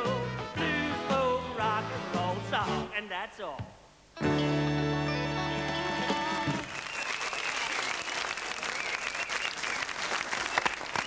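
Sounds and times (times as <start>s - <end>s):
audience applauding: 6.5s - 11.0s.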